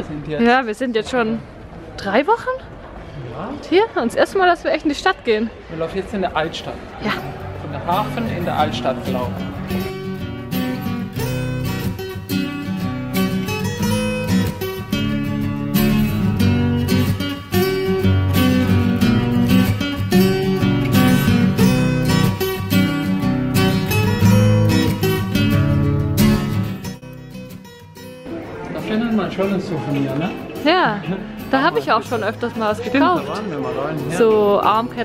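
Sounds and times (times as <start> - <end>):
strummed acoustic guitar: 6.9 - 35.0.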